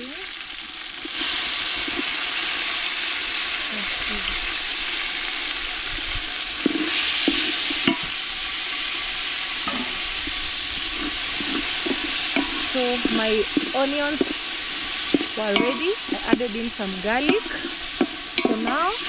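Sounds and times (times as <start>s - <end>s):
vegetables sizzling in hot oil: 0.0s - 19.0s
stick knocking against pot: 11.0s - 19.0s.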